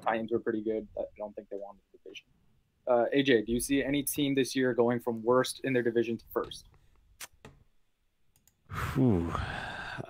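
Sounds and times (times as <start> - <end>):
person breathing: 8.7 - 10.0.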